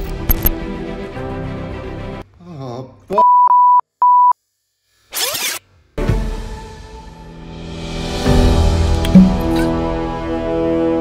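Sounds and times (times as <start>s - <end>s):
music with loud hit: 6.1s - 10.4s.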